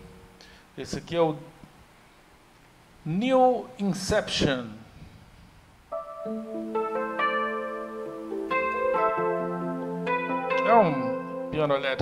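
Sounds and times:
electric piano chords: 0:05.9 - 0:12.0.

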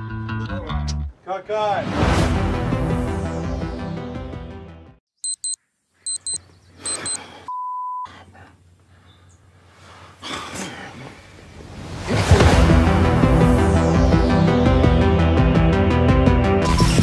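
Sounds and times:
music: 0:00.0 - 0:01.1, 0:02.0 - 0:05.0, 0:12.5 - 0:17.0
digital alarm clock beeping: 0:05.2 - 0:08.0.

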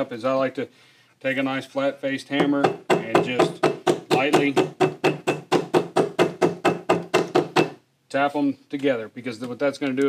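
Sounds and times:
hammer tapping leather on stone: 0:02.4 - 0:07.8.

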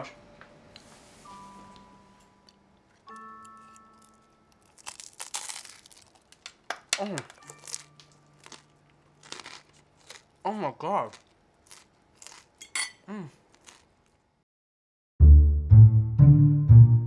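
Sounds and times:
faint held musical tones: 0:00.0 - 0:04.8
crunchy bite into pasta: 0:04.0 - 0:06.5, 0:07.5 - 0:10.3, 0:11.1 - 0:12.6, 0:13.4 - 0:14.2.

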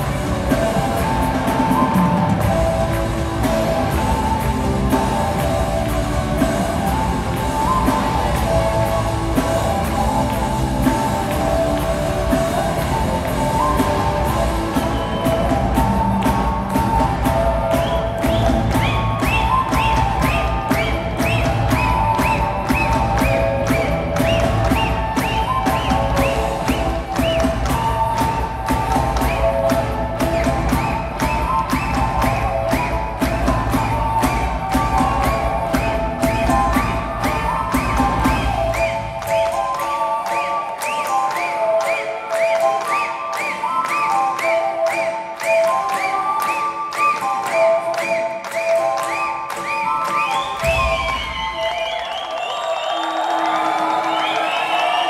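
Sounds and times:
drums: 0:00.0 - 0:55.0.

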